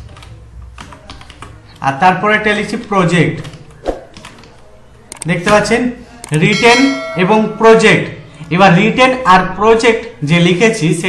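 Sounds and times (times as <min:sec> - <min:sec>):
computer keyboard typing: 0:00.0 - 0:01.8.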